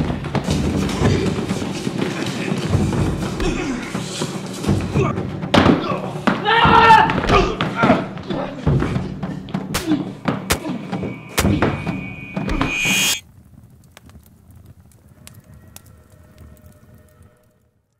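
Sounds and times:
grunts and shouts: 2.2 - 8.6
faint scattered crackles: 10.2 - 17.9.

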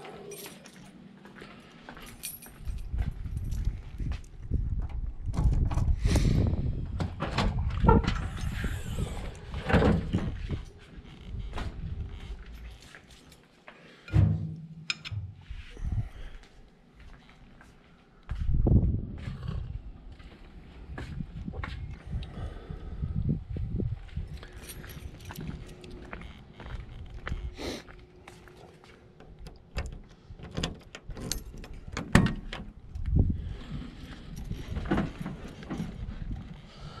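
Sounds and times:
low rumbling microphone noise: 2.6 - 12.7, 18.3 - 27.6
footsteps: 15.4 - 22.2, 23.5 - 30.2
sliding door latch clicks and clunks: 29.2 - 32.8.

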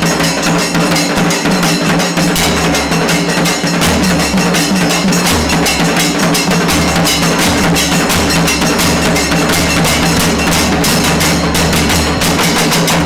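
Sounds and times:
barrel drums beaten with sticks: 0.0 - 13.0.

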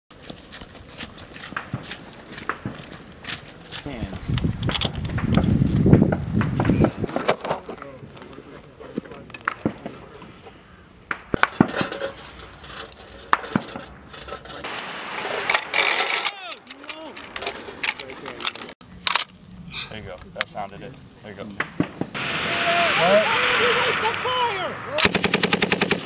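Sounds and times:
metal ammunition belt clinking: 11.4 - 19.4
voices: 14.7 - 18.7, 19.7 - 25.2.

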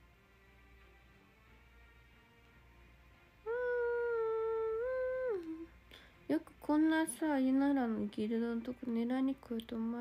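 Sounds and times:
woman humming: 3.4 - 5.8.

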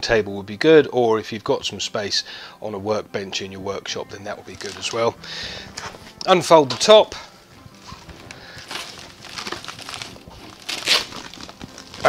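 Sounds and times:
fabric panels rustling and crinkling: 4.2 - 12.0.

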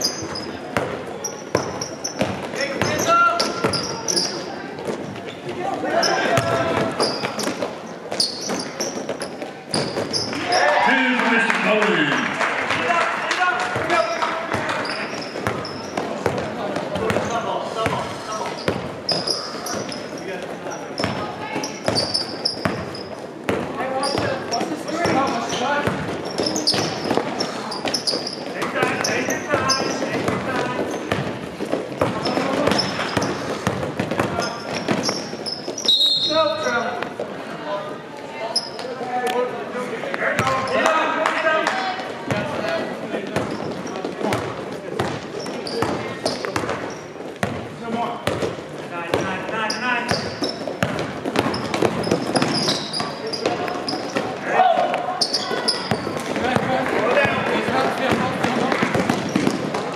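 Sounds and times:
shoes squeaking: 0.0 - 10.8, 13.8 - 37.3, 38.4 - 39.1, 42.0 - 59.9
basketball dribbling on court: 0.2 - 4.0, 14.5 - 20.0, 21.0 - 35.9, 43.4 - 54.4, 55.2 - 59.9.

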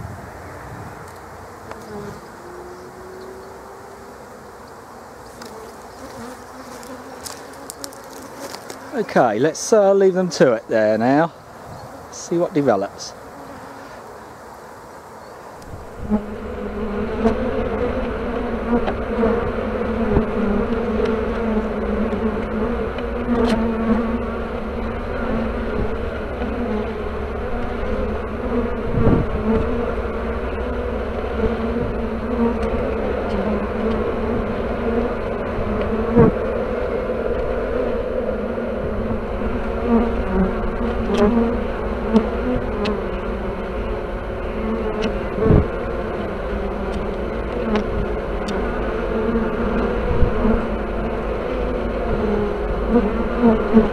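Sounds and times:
honeybees buzzing: 0.0 - 53.9.

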